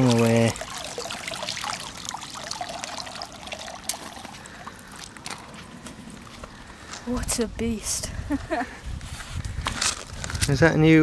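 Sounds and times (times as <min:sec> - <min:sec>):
small water splashes: 0:00.0 - 0:05.4
water trickling and dripping: 0:00.0 - 0:05.5.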